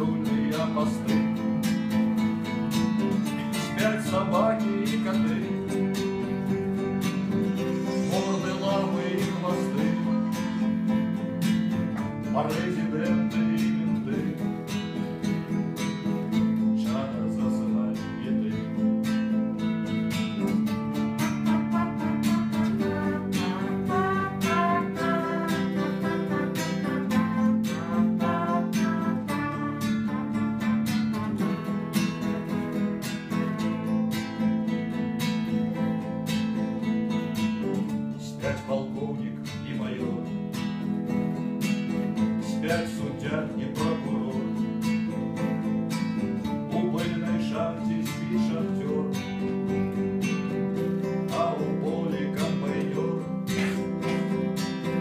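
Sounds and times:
man singing: 0:00.0 - 0:01.7, 0:03.2 - 0:15.1, 0:16.6 - 0:19.4, 0:20.4 - 0:30.7, 0:37.9 - 0:40.4, 0:42.2 - 0:44.9, 0:46.2 - 0:55.0
acoustic guitar strumming: 0:00.0 - 0:55.0.

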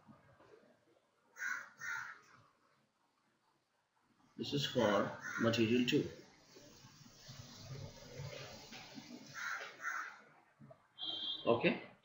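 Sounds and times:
crow cawing: 0:01.4 - 0:02.3, 0:05.2 - 0:05.6, 0:09.3 - 0:10.2.

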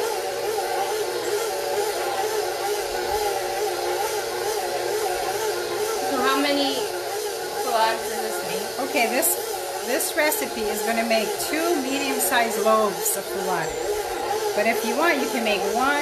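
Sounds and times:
stand mixer motor hum: 0:00.0 - 0:16.0.

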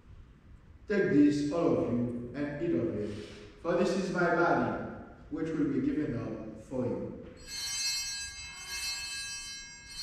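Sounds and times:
altar bells ringing: 0:07.4 - 0:10.0.

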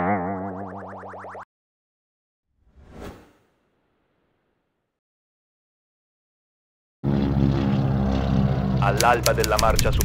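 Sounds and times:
loud steady low drone: 0:07.0 - 0:09.8.

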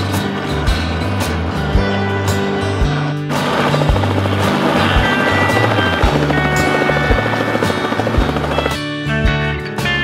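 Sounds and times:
background song: 0:02.0 - 0:08.8
helicopter rotor chop: 0:02.6 - 0:09.0.

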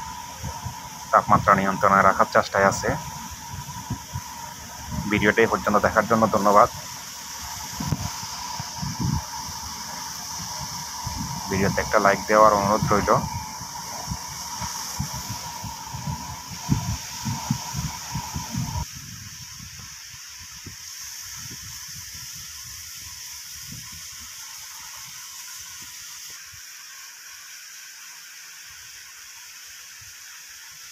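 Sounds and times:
low buffeting: 0:00.0 - 0:18.9
water jets spraying from hoses: 0:00.0 - 0:30.9.

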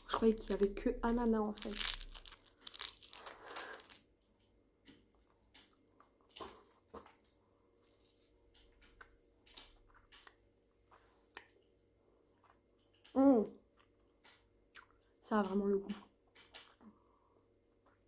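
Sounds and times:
hard candy crunching: 0:00.0 - 0:04.2
sweet wrapper crinkling: 0:00.0 - 0:04.2.

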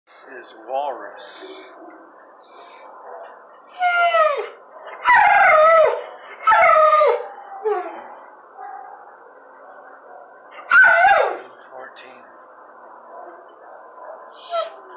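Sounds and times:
dog howling barks: 0:01.4 - 0:09.1, 0:10.1 - 0:11.5, 0:13.2 - 0:14.9.

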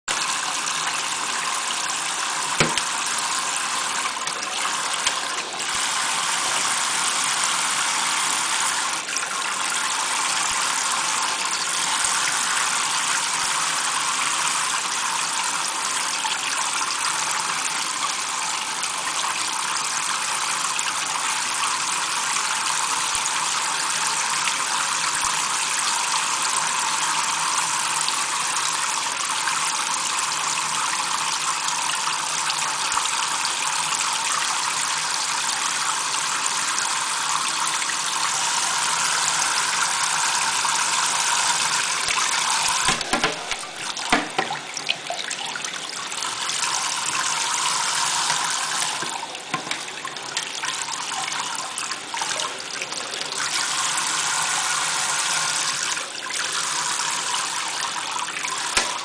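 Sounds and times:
faucet spray splashing water: 0:00.2 - 0:15.6, 0:37.3 - 0:45.1, 0:46.2 - 0:50.0, 0:53.4 - 0:59.0.

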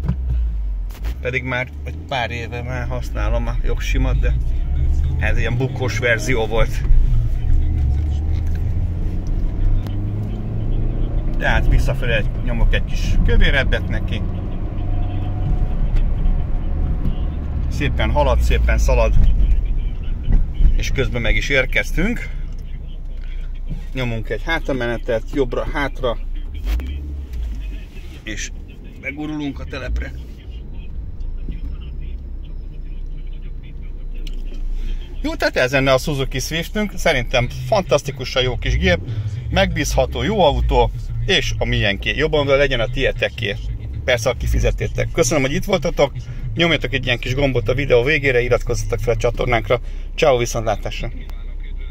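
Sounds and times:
car engine drone from inside: 0:00.0 - 0:51.9
road rumble: 0:00.0 - 0:51.9.

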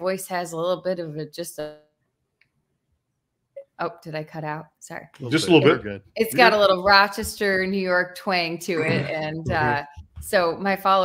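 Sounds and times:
woman's voice on video call: 0:00.0 - 0:01.8, 0:03.6 - 0:11.0.

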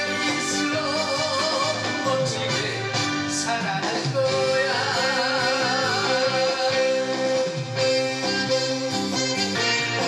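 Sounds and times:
man singing into microphone: 0:00.0 - 0:07.9
band accompaniment: 0:00.0 - 0:10.0.

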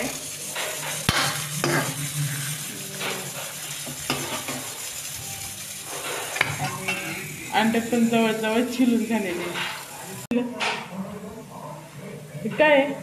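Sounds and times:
onions sizzling in oil: 0:00.0 - 0:10.4
spoon scraping and knocking pan: 0:00.0 - 0:10.8.

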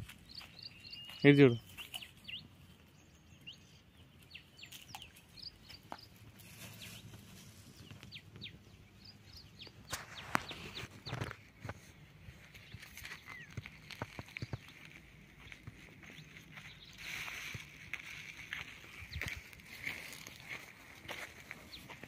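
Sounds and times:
birds chirping: 0:00.0 - 0:22.0.

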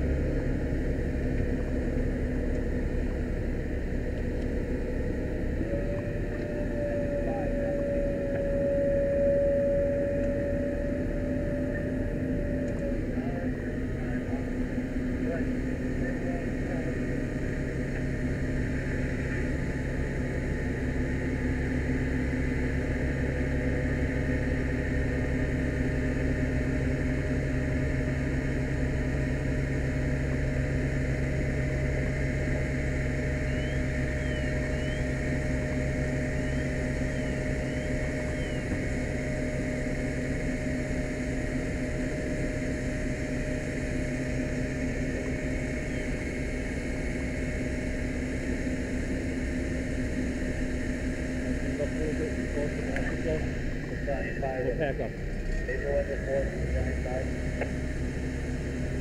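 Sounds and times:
engine running steadily: 0:00.0 - 0:59.0.

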